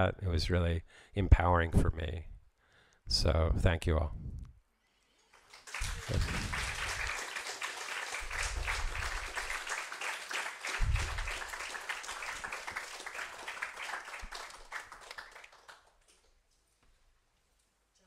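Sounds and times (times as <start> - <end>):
audience applauding: 5.4 - 16.2.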